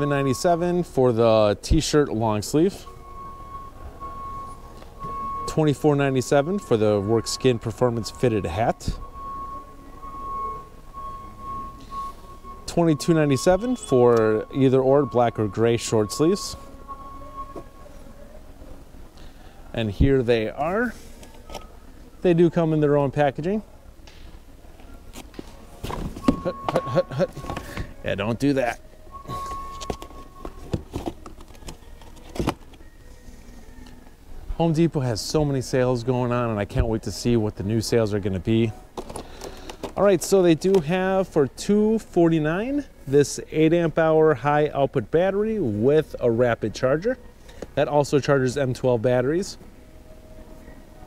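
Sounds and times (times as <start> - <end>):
steady high-pitched tone: 0.0 - 21.2, 24.9 - 31.5
faint background hum: 0.0 - 51.0.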